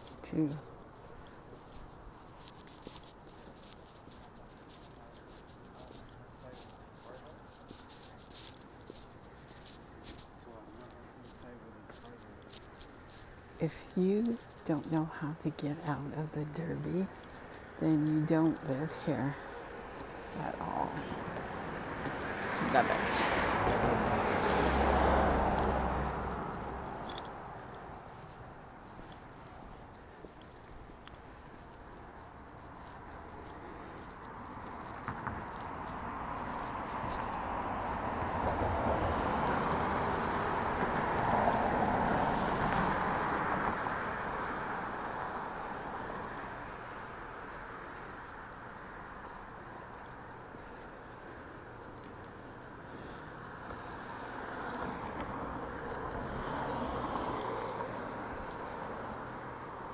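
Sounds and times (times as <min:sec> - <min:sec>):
faint high ticking: 0:00.0 - 0:59.9
vehicle passing: 0:00.0 - 0:59.9.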